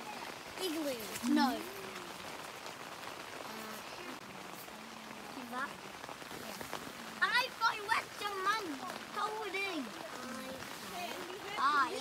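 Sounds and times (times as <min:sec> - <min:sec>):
rain pattering on tent fabric: 0:00.0 - 0:12.0.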